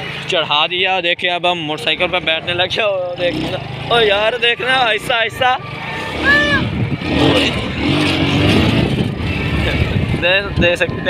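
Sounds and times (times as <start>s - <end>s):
motorcycle engine rumbling: 0.0s - 11.0s.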